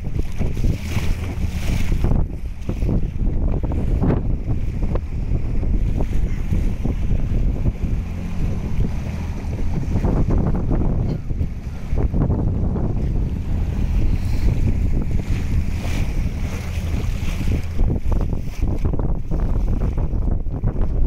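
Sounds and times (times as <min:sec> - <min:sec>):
outboard motor running: 0:00.0 - 0:21.0
water washing past hull: 0:00.0 - 0:21.0
wind buffeting microphone: 0:00.0 - 0:21.0.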